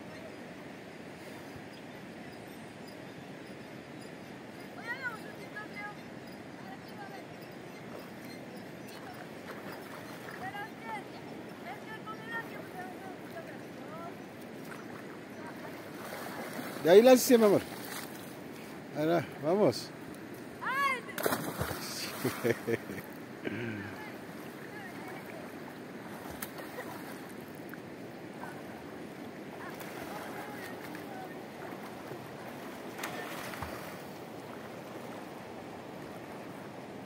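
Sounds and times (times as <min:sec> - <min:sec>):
river background rush: 0:00.0 - 0:37.0
water churning: 0:11.9 - 0:18.2, 0:20.6 - 0:22.7, 0:28.3 - 0:34.9
splash of diving into water: 0:21.2 - 0:22.4.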